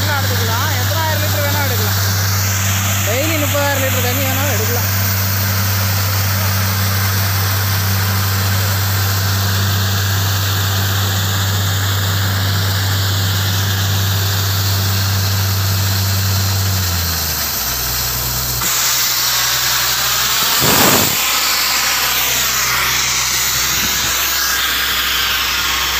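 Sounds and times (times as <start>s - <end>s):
drilling rig engine hum: 0.0s - 25.9s
hissing water spray: 0.0s - 25.9s.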